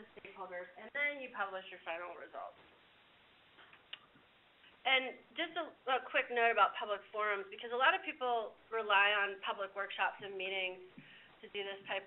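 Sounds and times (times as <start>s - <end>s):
woman speaking: 0.0s - 2.6s, 4.8s - 12.0s.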